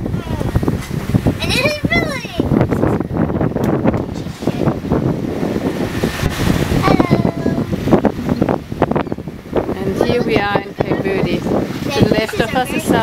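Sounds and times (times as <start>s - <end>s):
sea water rushing past boat: 0.0s - 13.0s
wind buffeting microphone: 0.0s - 13.0s.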